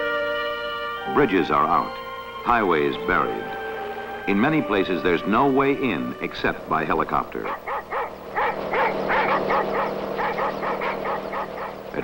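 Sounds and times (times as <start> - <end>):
steady low hum: 0.2 - 12.0
small dog yapping: 7.5 - 11.8.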